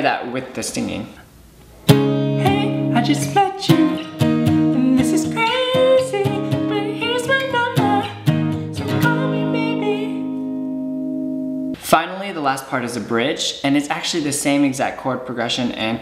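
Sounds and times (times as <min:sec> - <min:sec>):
acoustic guitar strumming: 0:01.8 - 0:11.8
man singing: 0:02.4 - 0:04.1, 0:04.7 - 0:08.1, 0:08.8 - 0:10.2.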